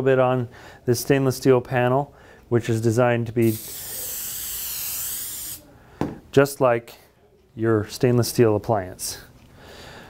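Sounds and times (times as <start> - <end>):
aerosol can spraying: 3.4 - 5.6.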